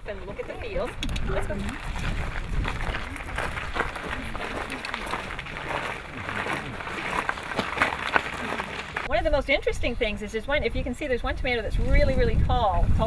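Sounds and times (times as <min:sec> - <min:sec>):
footsteps crunching on gravel: 0:00.0 - 0:09.4
indistinct chatter: 0:02.7 - 0:10.7.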